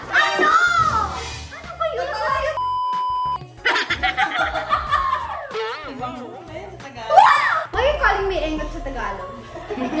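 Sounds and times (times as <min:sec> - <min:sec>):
background music: 0:00.0 - 0:10.0
high-pitched censor bleep: 0:02.6 - 0:03.4
woman laughing: 0:03.6 - 0:05.5, 0:09.5 - 0:10.0.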